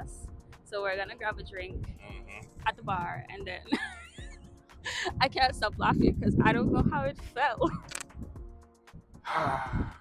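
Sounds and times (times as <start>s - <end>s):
faint background music: 0.0s - 10.0s
person laughing: 3.7s - 5.2s
person sighing: 9.3s - 10.0s.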